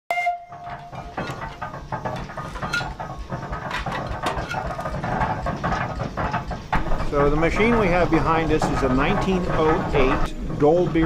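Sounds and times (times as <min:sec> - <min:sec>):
steam whistle tone: 0:00.1 - 0:01.0
steam engine clanking and knocking: 0:00.1 - 0:11.0.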